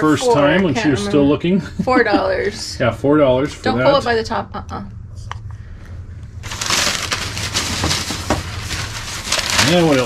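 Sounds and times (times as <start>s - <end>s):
plastic bag and tissue paper rustling: 6.4s - 10.0s.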